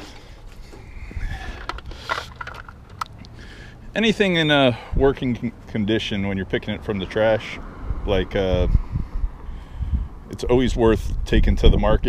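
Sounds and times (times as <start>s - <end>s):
handling rumble: 0.0s - 5.8s.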